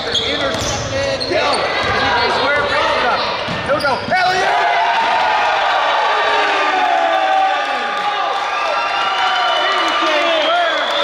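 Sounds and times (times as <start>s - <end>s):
sneakers squeaking on court: 0.0s - 2.1s
players' voices echoing: 0.0s - 5.2s.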